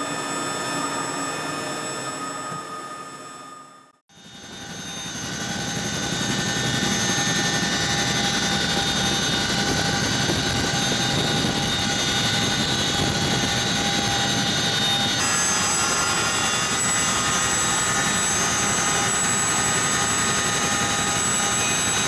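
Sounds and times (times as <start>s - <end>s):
helicopter rotor and turbine noise: 0.0s - 22.0s.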